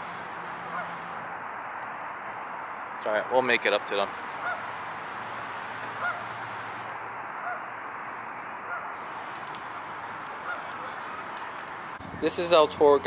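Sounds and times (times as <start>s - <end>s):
steady background noise: 0.0s - 13.0s
geese honking: 0.6s - 1.1s, 4.1s - 12.0s.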